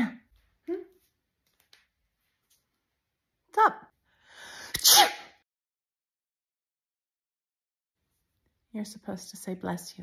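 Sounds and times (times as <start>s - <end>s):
person sneezing: 4.6s - 5.4s.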